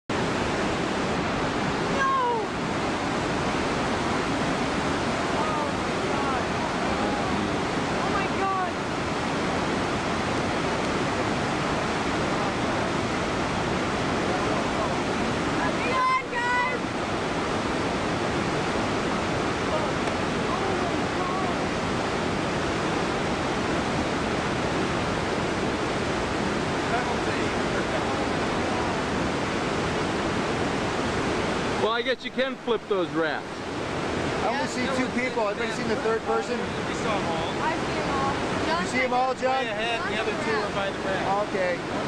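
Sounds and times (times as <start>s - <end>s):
whitewater rapid roaring: 0.1s - 42.0s.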